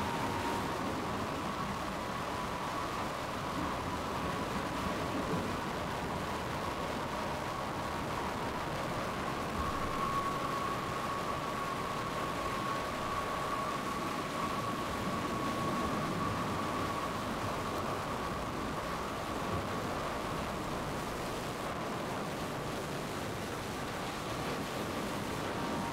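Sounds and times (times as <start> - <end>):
faint steady high tone: 0.0 - 25.9
rushing wind: 0.0 - 25.9.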